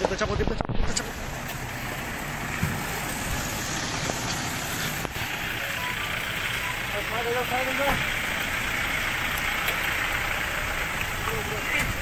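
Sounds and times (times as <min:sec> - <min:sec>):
cars driving past: 0:00.9 - 0:12.0.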